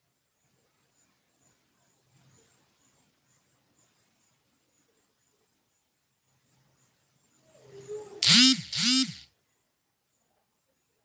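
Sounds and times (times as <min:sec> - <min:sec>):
voice making short calls: 0:08.2 - 0:09.2.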